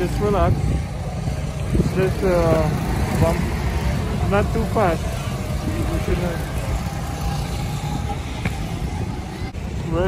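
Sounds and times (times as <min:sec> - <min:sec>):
go-kart engines rumbling: 0:00.0 - 0:10.0.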